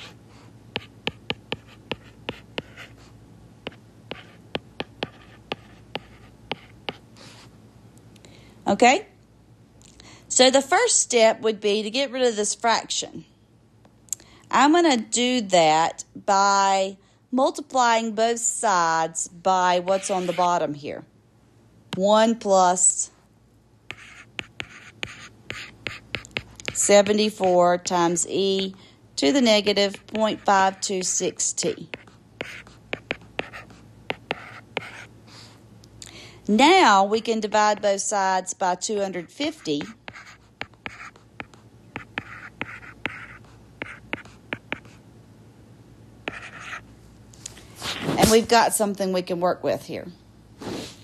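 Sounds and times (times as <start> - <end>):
stylus scratching on tablet: 0.0 - 7.5, 19.7 - 20.7, 23.9 - 28.8, 29.5 - 35.1, 38.7 - 45.0, 46.3 - 46.8
stylus scratching strokes: 19.9 - 20.6.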